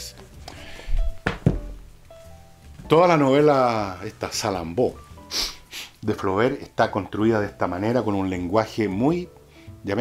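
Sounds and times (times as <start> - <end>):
faint background music: 0.0 - 10.0
book thumping on a desk: 1.0 - 1.8.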